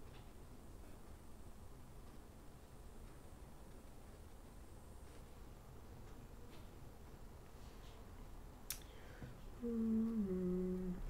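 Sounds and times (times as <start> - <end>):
woman humming: 9.6 - 11.0.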